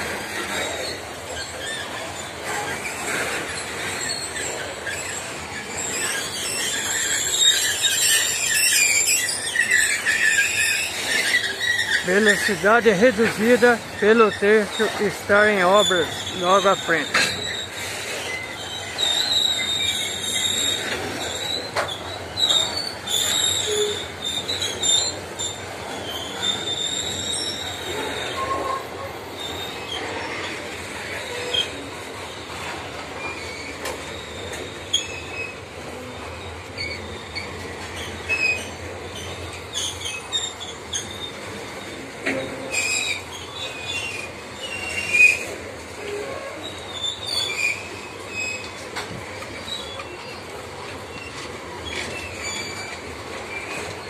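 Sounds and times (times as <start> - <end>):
freight train rumbling past: 0.0 - 54.0
wheels squealing: 0.0 - 54.0.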